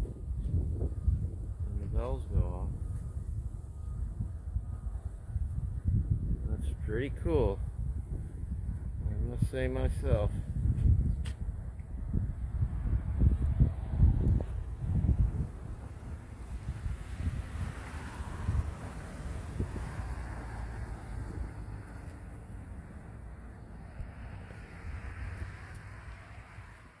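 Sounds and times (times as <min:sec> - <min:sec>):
wind buffeting microphone: 0:00.0 - 0:22.7.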